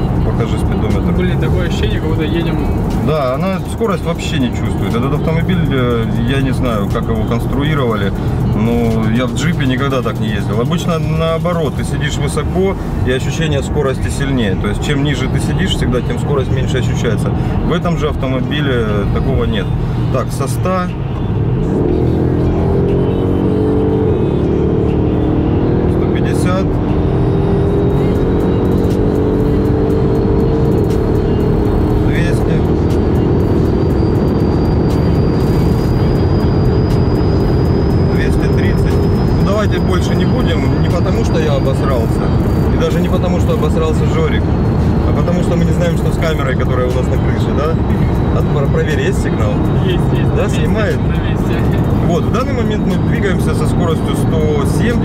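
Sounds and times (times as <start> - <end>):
car engine accelerating: 0.0 - 55.0
road noise: 0.0 - 55.0.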